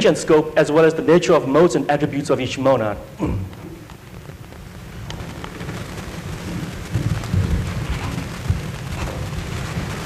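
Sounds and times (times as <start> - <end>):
low rumbling noise: 0.0 - 10.0
hiss: 3.6 - 10.0.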